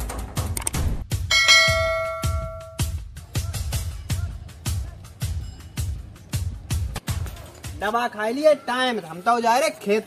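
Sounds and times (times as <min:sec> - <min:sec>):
low music beat: 0:00.2 - 0:07.2
bell-like chime: 0:01.3 - 0:02.9.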